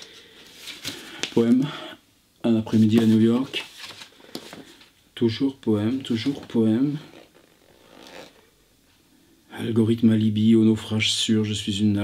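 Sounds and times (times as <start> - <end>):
paperback pages rustling: 0.0 - 1.6, 2.7 - 4.9, 5.9 - 8.4.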